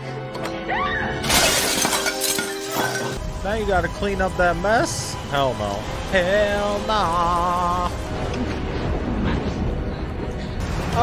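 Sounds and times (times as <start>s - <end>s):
dramatic background music: 0.0s - 11.0s
glass shattering: 1.2s - 3.2s.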